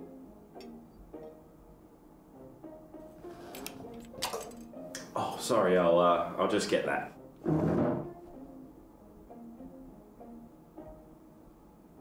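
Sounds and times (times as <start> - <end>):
soft background music: 0.0 - 12.0
metal cutlery clinking: 3.5 - 4.8.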